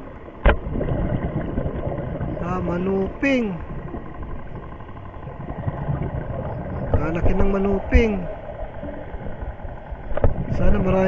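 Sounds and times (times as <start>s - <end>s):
faint mechanical hum: 0.0s - 11.0s
low underwater rumble: 0.0s - 11.0s.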